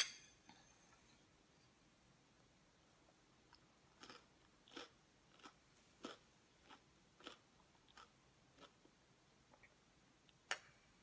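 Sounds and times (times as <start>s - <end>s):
chewing crunchy cereal: 3.5s - 8.9s.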